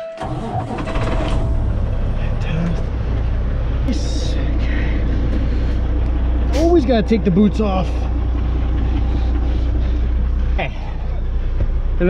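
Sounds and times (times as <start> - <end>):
diesel truck engine idling: 0.2 - 12.0.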